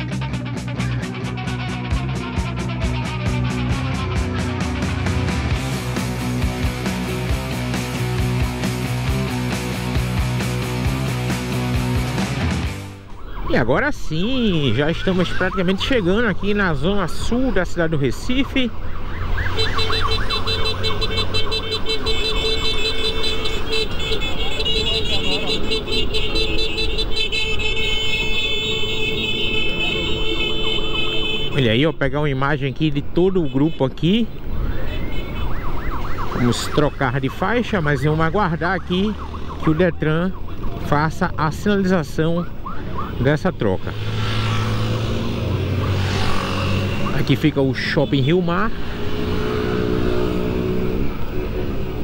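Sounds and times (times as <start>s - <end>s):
road rumble: 0.0s - 52.0s
vehicle engine humming: 0.0s - 52.0s
sirens wailing: 5.7s - 52.0s
wind: 12.9s - 52.0s.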